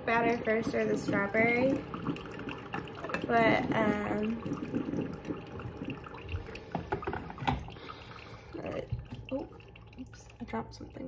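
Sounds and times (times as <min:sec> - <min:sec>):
coffee machine brewing: 0:00.0 - 0:11.0
liquid trickling and dripping: 0:00.0 - 0:11.0.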